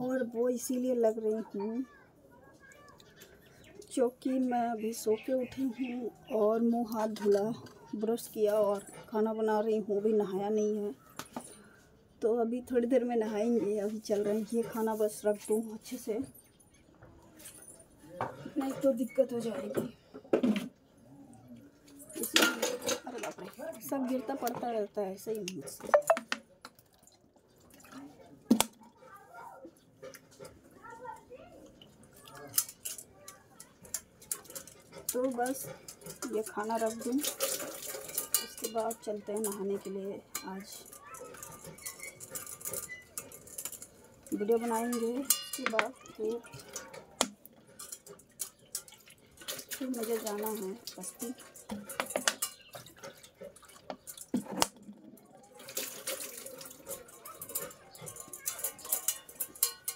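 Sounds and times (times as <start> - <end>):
light clinks: 31.8 - 59.9
water poured from plastic bottle: 36.2 - 38.6, 46.4 - 59.1.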